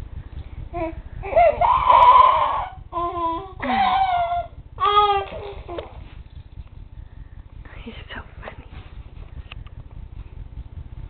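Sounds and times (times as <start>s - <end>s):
baby making loud vocal calls: 1.2s - 5.6s.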